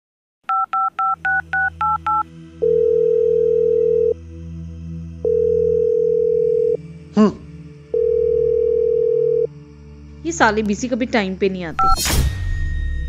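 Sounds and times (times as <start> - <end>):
keypad beeps: 0.5 - 2.2, 11.8 - 12.0
phone ringing tone: 0.5 - 4.2, 5.2 - 6.8, 8.0 - 9.5.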